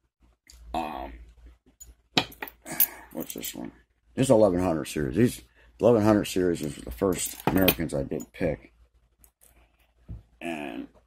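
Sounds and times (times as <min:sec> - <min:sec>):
padlocks clinking on a mat: 0:01.8 - 0:03.6, 0:06.6 - 0:08.4
man talking: 0:03.1 - 0:08.7.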